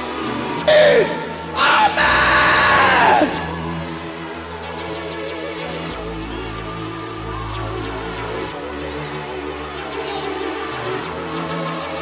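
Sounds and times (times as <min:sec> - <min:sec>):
background music: 0:00.0 - 0:12.0
man shouting into a microphone: 0:00.7 - 0:03.6.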